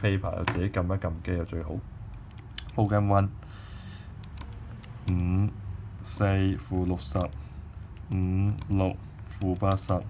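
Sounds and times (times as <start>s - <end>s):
calculator key clicks: 6.9s - 10.0s.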